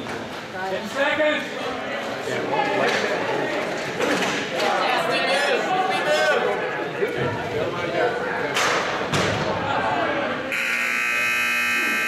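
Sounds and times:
crowd chatter: 0:00.0 - 0:12.0
game clock buzzer: 0:10.5 - 0:12.0.

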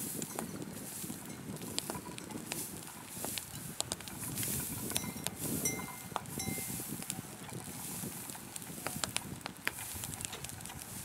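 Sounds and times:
wind rumble: 0:00.0 - 0:11.0
sharp clicks and taps: 0:03.3 - 0:04.2.

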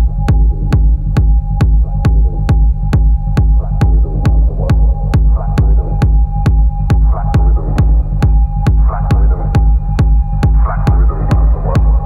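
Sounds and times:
deep bass: 0:00.0 - 0:12.0
pounding kick drum: 0:00.0 - 0:12.0.

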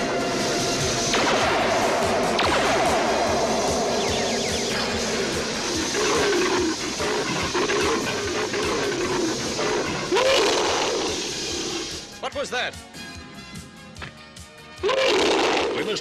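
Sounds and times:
dramatic cartoon music: 0:00.0 - 0:13.6, 0:14.6 - 0:16.0
big cat roaring: 0:04.9 - 0:11.9, 0:14.8 - 0:15.9.

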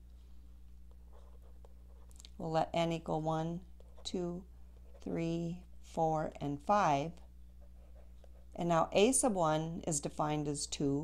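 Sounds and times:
steady low hum: 0:00.0 - 0:11.0
stylus scratching on tablet: 0:00.8 - 0:05.6, 0:06.4 - 0:09.3.

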